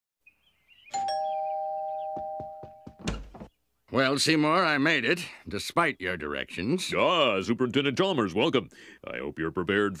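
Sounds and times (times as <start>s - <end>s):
two-tone doorbell chime: 0.9s - 3.0s.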